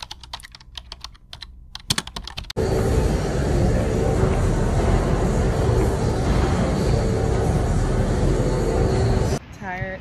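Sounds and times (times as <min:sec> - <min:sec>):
stair-climber machine running: 0:02.6 - 0:09.4.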